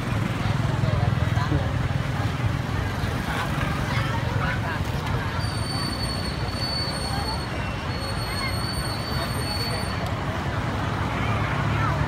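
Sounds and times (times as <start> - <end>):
people's voices: 0.0 - 12.0
traffic rumble: 0.0 - 12.0.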